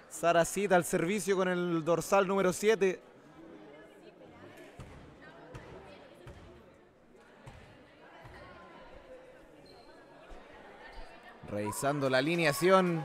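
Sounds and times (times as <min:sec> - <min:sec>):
faint crowd chatter: 0:00.0 - 0:13.0.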